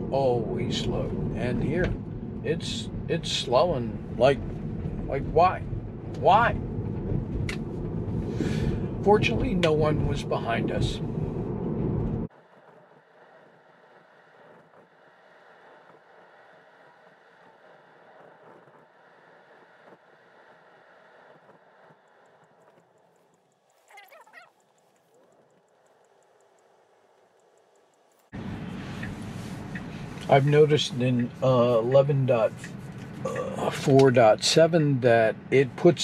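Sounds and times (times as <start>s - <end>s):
road and tyre noise: 0.0s - 36.0s.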